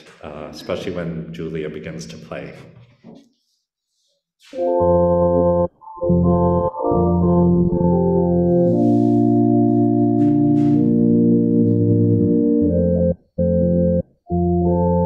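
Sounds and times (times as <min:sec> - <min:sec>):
church organ sustained chords: 0:04.6 - 0:15.0.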